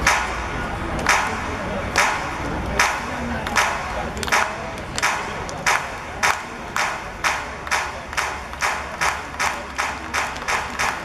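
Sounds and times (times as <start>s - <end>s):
spectators clapping in rhythm: 0.0s - 11.0s.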